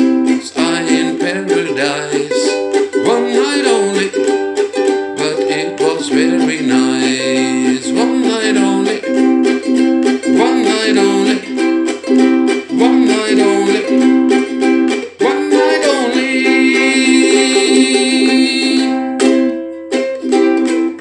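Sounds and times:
ukulele strumming: 0.0s - 21.0s.

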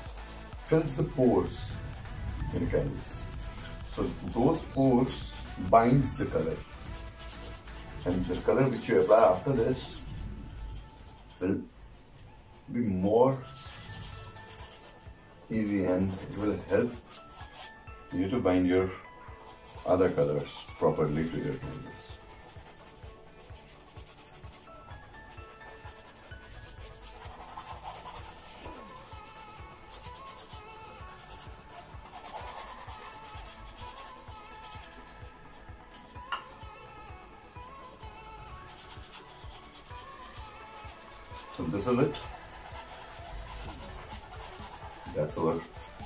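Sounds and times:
paintbrush rubbing on canvas: 0.0s - 11.7s, 13.3s - 17.8s, 18.9s - 36.2s, 37.8s - 46.0s
faint background music: 0.0s - 46.0s.

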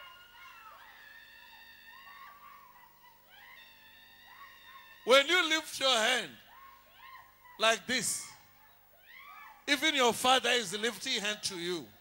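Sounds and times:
faint high-pitched wailing voices: 0.0s - 5.2s.

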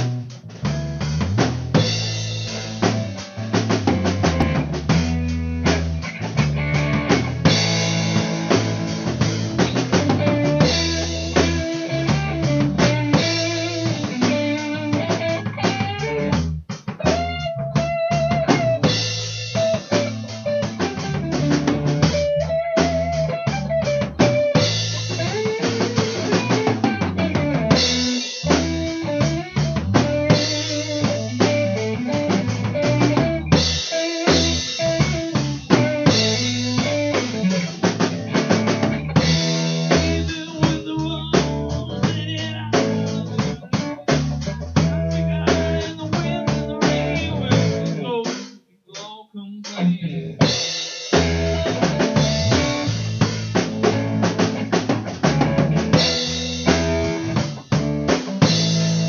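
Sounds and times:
drum kit beat: 0.0s - 59.0s
guitar: 0.0s - 59.0s.

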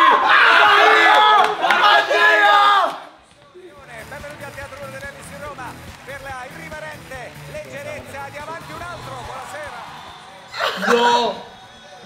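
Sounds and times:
background music: 3.5s - 12.0s.

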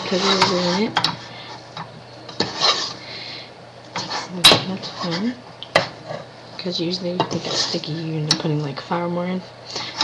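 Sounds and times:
wooden spoon scraping a pan: 0.0s - 3.0s, 3.9s - 8.1s.

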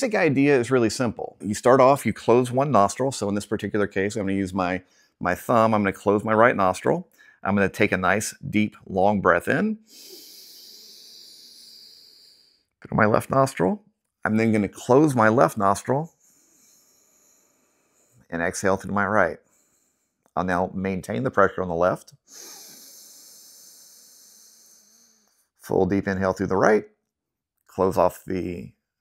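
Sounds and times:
deep inhale through nostril: 9.8s - 12.7s, 16.2s - 18.3s, 22.3s - 25.5s.

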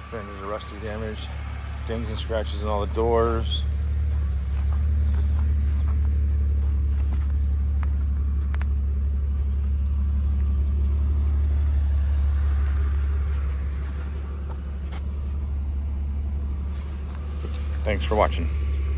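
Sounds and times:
car engine idling: 0.0s - 18.9s.

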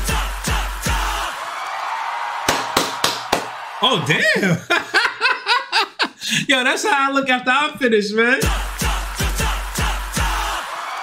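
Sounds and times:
electro-pop bass beat: 0.0s - 1.3s, 8.4s - 10.7s
hand claps: 0.1s - 3.6s, 8.4s - 11.0s.

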